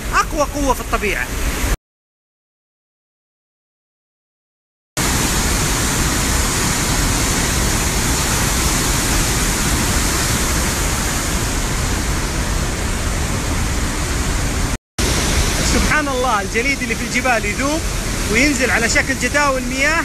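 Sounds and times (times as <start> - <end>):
waterfall rushing: 5.0 - 20.0.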